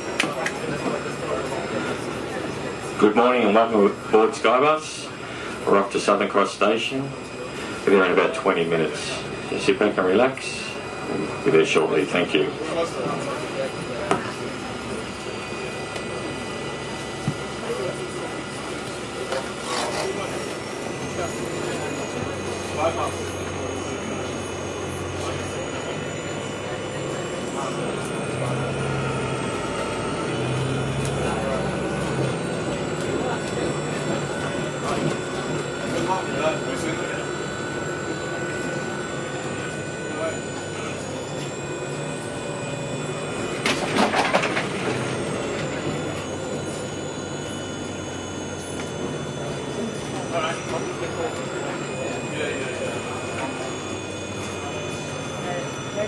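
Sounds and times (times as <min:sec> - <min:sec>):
bus engine and road noise: 0:00.0 - 0:56.0
faint high whine: 0:00.0 - 0:56.0.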